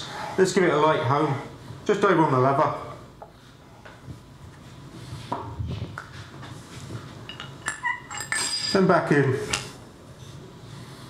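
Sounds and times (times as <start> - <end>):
metal parts handling and rubbing: 6.6 - 9.8
metallic clinks: 7.3 - 8.8.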